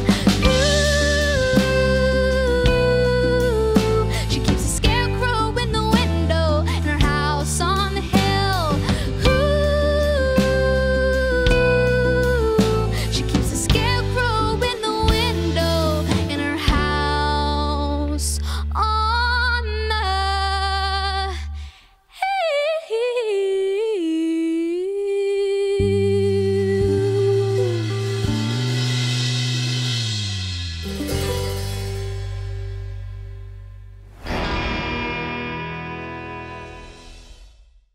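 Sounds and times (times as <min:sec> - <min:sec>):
country band playing: 0:00.0 - 0:18.0, 0:27.2 - 0:33.4, 0:34.2 - 0:37.2
held melodic line with vibrato: 0:00.0 - 0:18.1
bass guitar: 0:00.0 - 0:21.5, 0:25.8 - 0:37.8.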